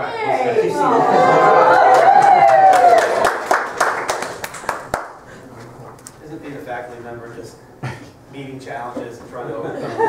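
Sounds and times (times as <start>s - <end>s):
scattered hand claps: 1.9s - 5.2s.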